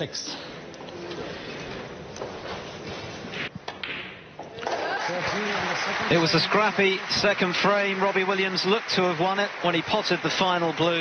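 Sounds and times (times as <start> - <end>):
hushed hall ambience: 0.0 - 11.0.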